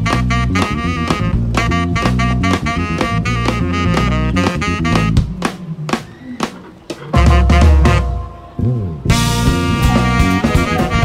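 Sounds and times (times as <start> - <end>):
strong bass line: 0.0 - 5.5, 7.2 - 11.0
tenor saxophone lead: 0.0 - 5.5, 7.1 - 11.0
drum kit: 0.0 - 11.0
keyboards: 0.0 - 11.0.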